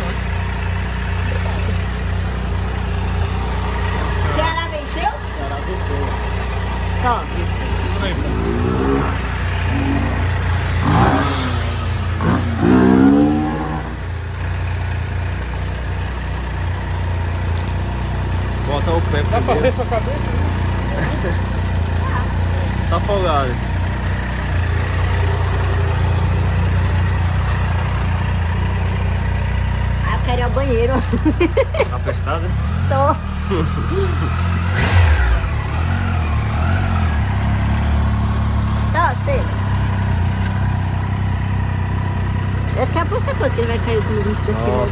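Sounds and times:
voices: 0.0s - 14.4s, 17.6s - 44.9s
motorcycle engine idling: 0.0s - 44.9s.

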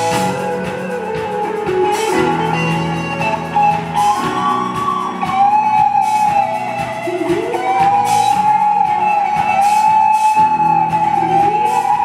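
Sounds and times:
electric guitar: 0.0s - 12.0s
keyboard: 0.0s - 12.0s.

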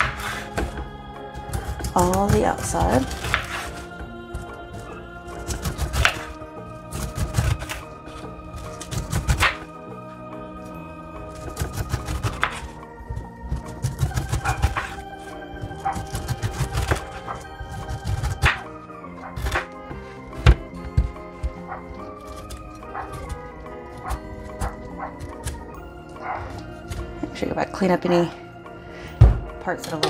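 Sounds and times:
background music: 0.0s - 30.0s.

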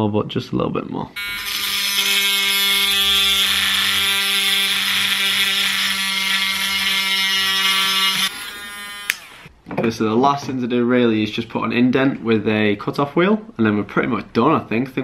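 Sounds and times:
rotary tool grinding: 1.2s - 9.5s.

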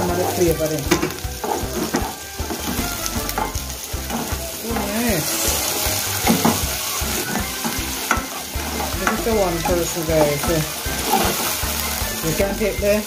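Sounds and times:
spatula scraping a pot: 0.0s - 12.5s
vegetables sizzling in a pot: 0.0s - 13.0s.

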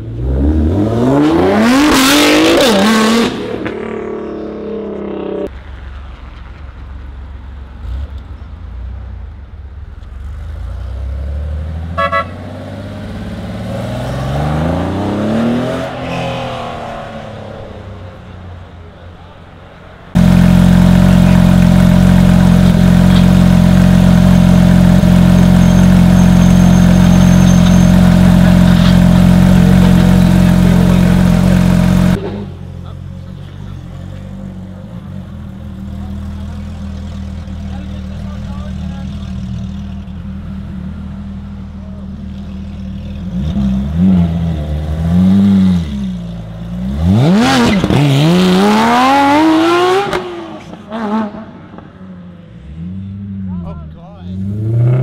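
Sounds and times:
car accelerating away: 0.0s - 5.5s, 10.2s - 19.0s, 20.1s - 53.6s, 54.2s - 55.0s
sports car engine idling: 18.2s - 43.3s.

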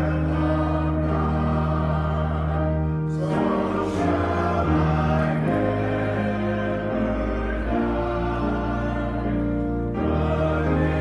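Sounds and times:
congregation singing a hymn: 0.0s - 11.0s.

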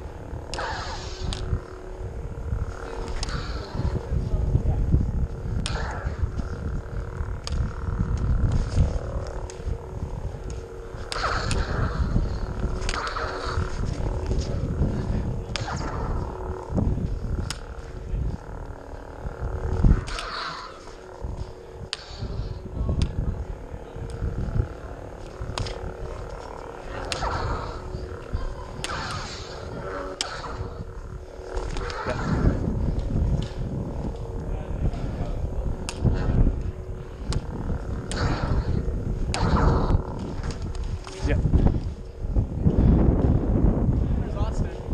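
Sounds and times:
electronic saber hum: 0.0s - 44.9s
low rumble of movement: 0.0s - 44.9s
wind on microphone: 0.0s - 44.9s.

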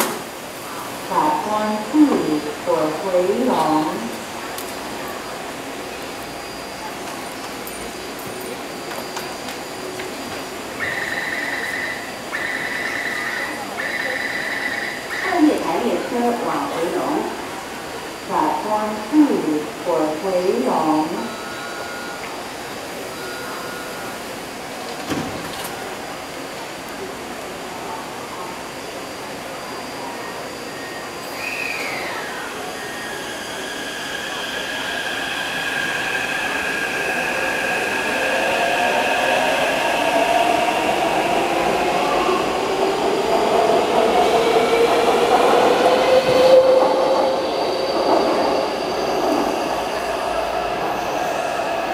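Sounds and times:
short beeps: 21.3s - 22.3s, 23.1s - 24.2s
train traction motor whine: 29.6s - 51.9s.

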